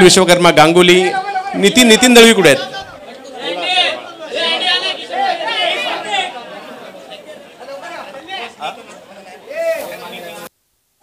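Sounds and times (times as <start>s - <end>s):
men talking: 0.0s - 10.5s.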